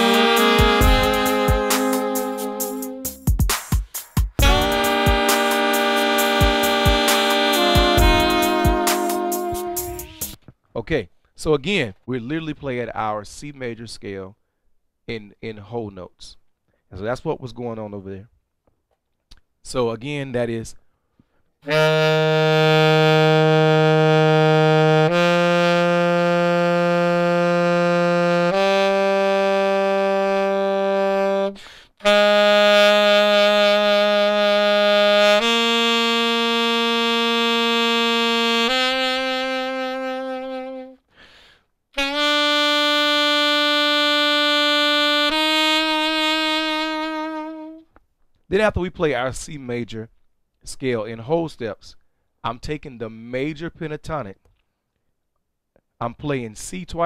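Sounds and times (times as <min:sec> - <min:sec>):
saxophone playing a scale: 0:00.0 - 0:10.4, 0:21.6 - 0:41.1, 0:42.0 - 0:47.9.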